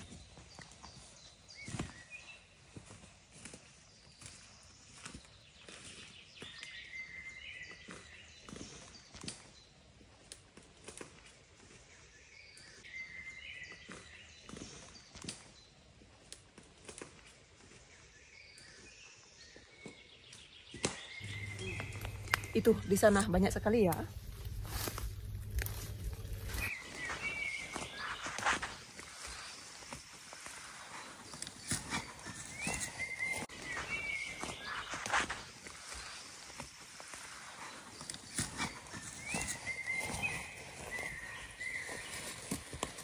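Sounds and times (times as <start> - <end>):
leaves rustling and stems snapping: 13.9 - 15.6, 16.2 - 17.7, 20.3 - 43.0
birds chirping: 17.8 - 43.0.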